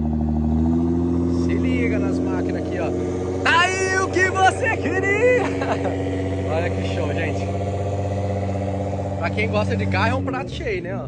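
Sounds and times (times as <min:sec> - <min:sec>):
sports car engine idling: 0:00.0 - 0:11.0
person calling out: 0:03.4 - 0:05.6.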